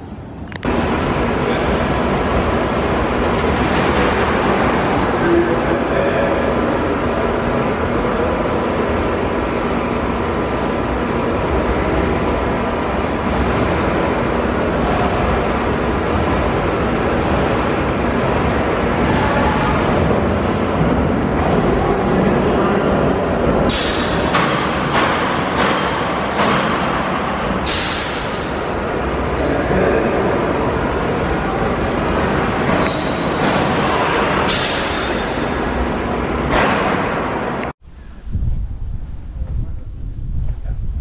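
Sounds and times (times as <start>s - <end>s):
roller coaster train rumbling: 0.0s - 41.0s.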